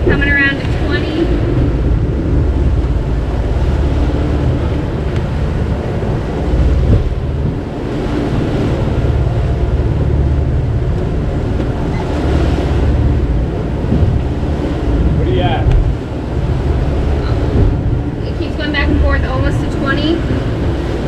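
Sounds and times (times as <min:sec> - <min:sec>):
water rushing along hull: 0:00.0 - 0:21.0
wind buffeting microphone: 0:00.0 - 0:21.0.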